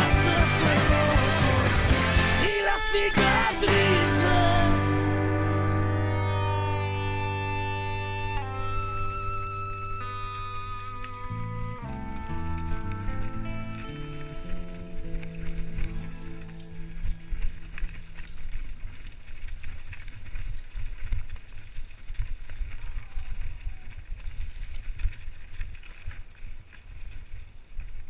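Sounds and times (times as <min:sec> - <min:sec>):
background music: 0:00.0 - 0:17.4
ground and wind rumble: 0:05.2 - 0:28.0
mountain bike rattling: 0:08.6 - 0:28.0.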